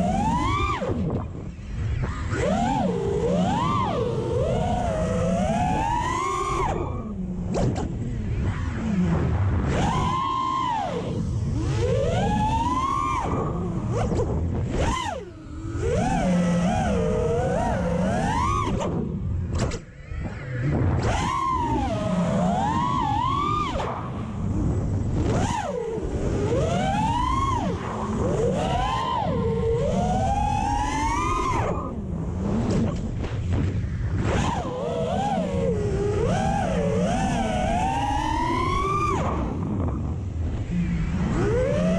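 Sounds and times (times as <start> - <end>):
drone motors whining: 0.0 - 41.9.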